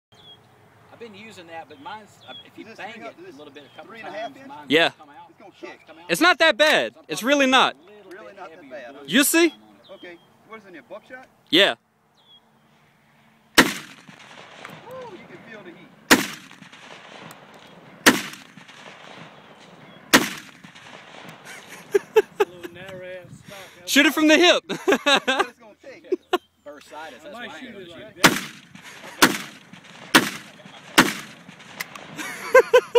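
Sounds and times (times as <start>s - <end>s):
shotgun shot: 13.6s - 15.3s, 16.1s - 21.6s, 28.2s - 32.2s.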